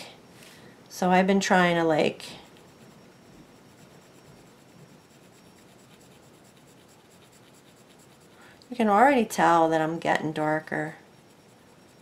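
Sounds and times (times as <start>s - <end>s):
pencil scratching on paper: 2.4s - 9.2s, 10.8s - 12.0s.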